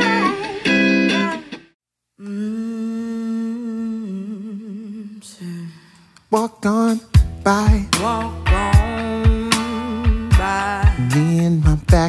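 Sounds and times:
person humming a long note: 0:02.2 - 0:05.8
guitar chords: 0:07.1 - 0:12.0.

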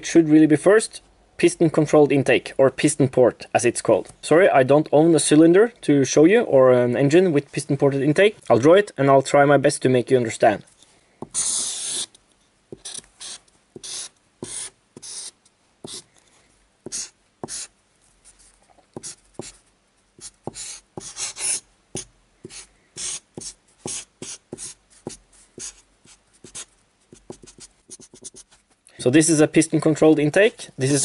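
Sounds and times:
marker drawing on paper: 0:11.2 - 0:12.1, 0:12.7 - 0:16.1, 0:16.8 - 0:17.7, 0:18.4 - 0:19.6, 0:20.2 - 0:28.6.

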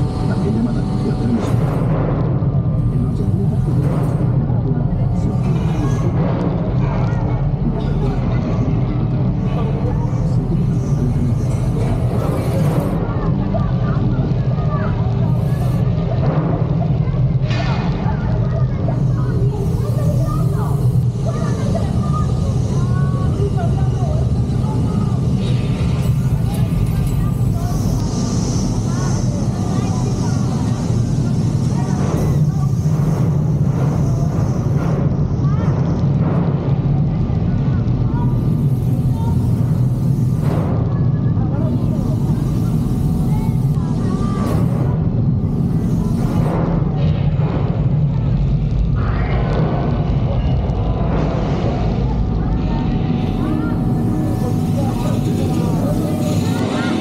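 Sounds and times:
murmur of voices: 0:00.0 - 0:57.0.

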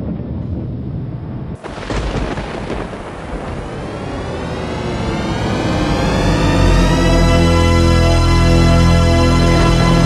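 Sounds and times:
thunder crack rumble: 0:00.0 - 0:08.2
music swell of sustained tones: 0:03.0 - 0:10.0.

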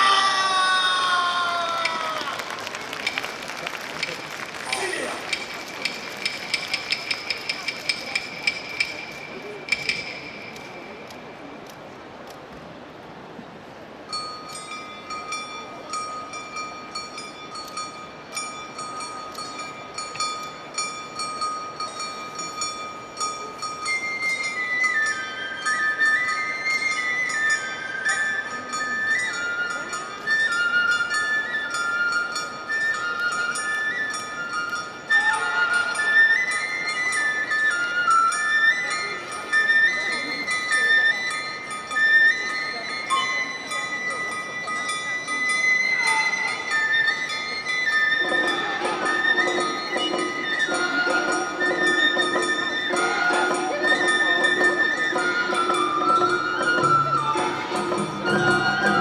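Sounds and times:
bamboo flute melody: 0:00.0 - 0:12.8, 0:13.7 - 0:59.0
light percussion hits: 0:01.7 - 0:11.8
high whistle-like tone: 0:23.9 - 0:59.0.

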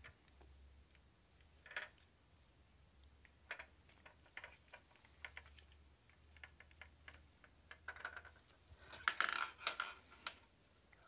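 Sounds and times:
ball clicking in plastic maze: 0:01.0 - 0:02.1, 0:03.2 - 0:10.5.

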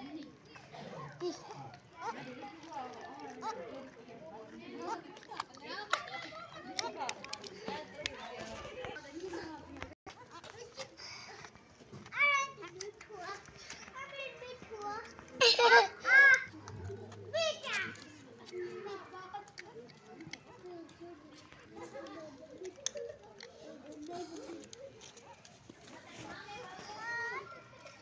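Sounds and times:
children talking and playing: 0:00.0 - 0:28.0
faint low voices: 0:00.0 - 0:28.0.

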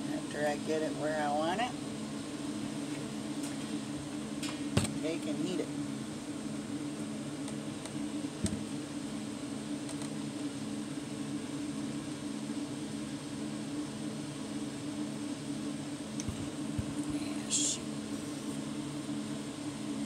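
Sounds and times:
steady mechanical hum: 0:00.0 - 0:20.0.

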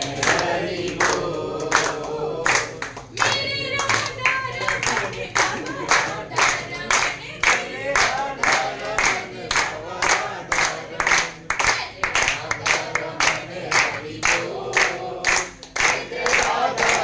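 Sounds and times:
group singing devotional song: 0:00.0 - 0:17.0
hand-clapping: 0:00.0 - 0:17.0.

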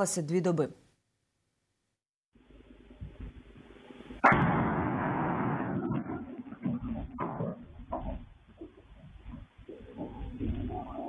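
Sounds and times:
explosion bang and rumble: 0:04.2 - 0:08.6.

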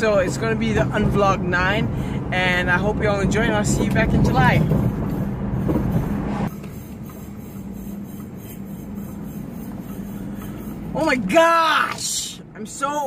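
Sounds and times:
car road and engine rumble: 0:00.0 - 0:13.0.

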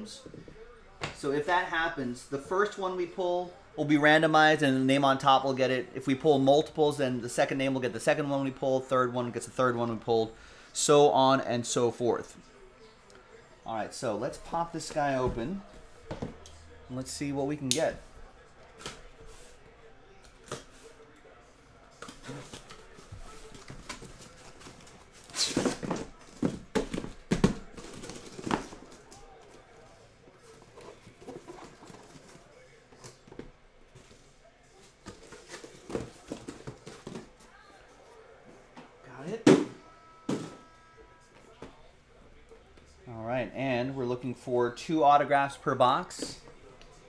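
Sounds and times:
cardboard and plastic wrap rustling: 0:22.0 - 0:29.6, 0:30.4 - 0:34.2.

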